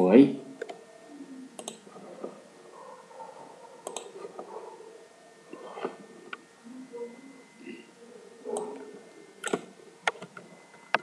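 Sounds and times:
faint room noise: 0.0s - 11.0s
computer mouse clicking: 1.6s - 2.4s, 3.8s - 4.5s, 8.6s - 11.0s.

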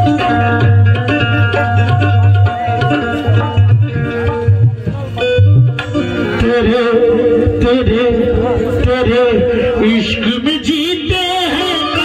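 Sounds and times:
hand drum strokes: 0.0s - 9.1s
harmonium tones: 0.0s - 12.0s.

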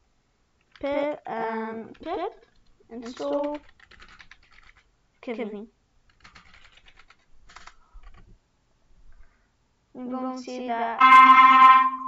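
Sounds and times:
keyboard keystrokes: 1.9s - 4.8s, 6.1s - 8.2s.

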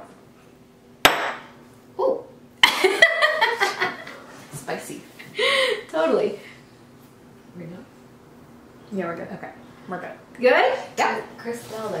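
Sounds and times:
laughter: 2.6s - 4.2s.

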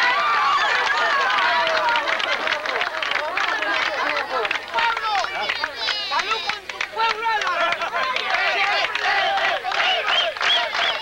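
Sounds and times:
crowd voices talking and calling: 0.0s - 11.0s.

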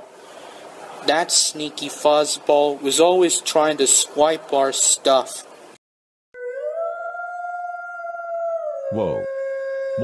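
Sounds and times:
howl-like cartoon sound effect: 6.4s - 10.0s.

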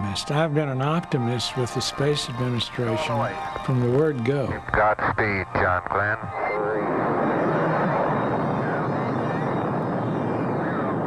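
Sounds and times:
rocket engines roaring: 0.0s - 11.0s.

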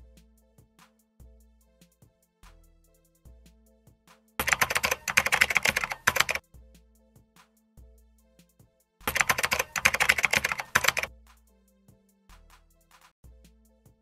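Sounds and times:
quiet background music: 0.0s - 14.0s
rapid keyboard typing: 4.4s - 6.4s, 9.1s - 11.1s.

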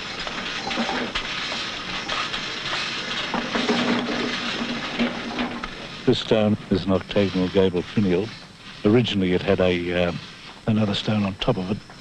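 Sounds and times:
steady rushing hiss: 0.0s - 12.0s.

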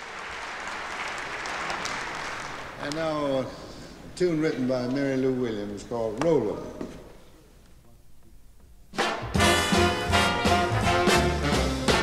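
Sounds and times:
swing big band with brass: 8.9s - 12.0s.

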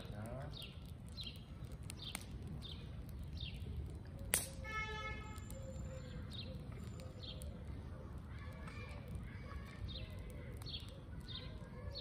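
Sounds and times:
sharp crack: 0.0s - 5.6s
small bird chirping: 0.3s - 4.4s, 5.2s - 7.7s.

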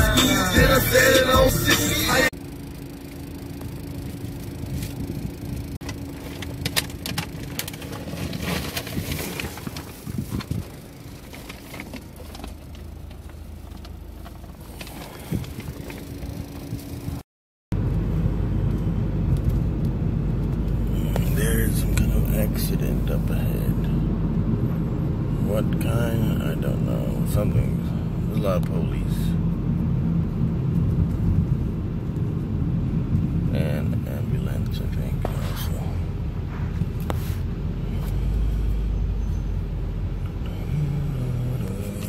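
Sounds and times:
rapping over music: 0.0s - 2.3s
car road and engine noise: 0.0s - 42.0s
low hum: 0.0s - 42.0s.

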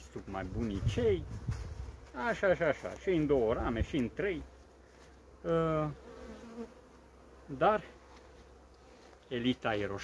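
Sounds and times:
bees buzzing: 1.7s - 10.0s.

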